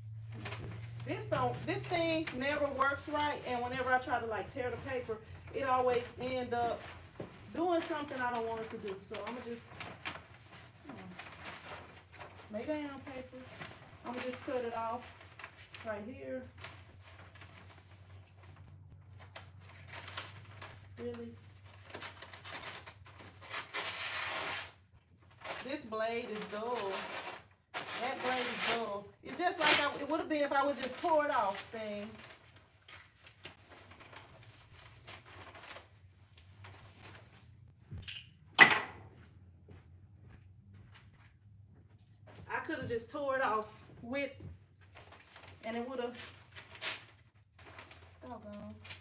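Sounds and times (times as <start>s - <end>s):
low steady hum: 0.0s - 23.6s
paper rustling and scratching: 0.3s - 37.5s, 44.8s - 49.0s.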